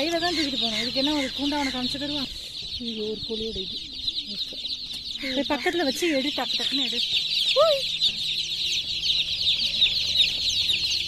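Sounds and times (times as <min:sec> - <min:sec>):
chicks peeping: 0:00.0 - 0:11.0.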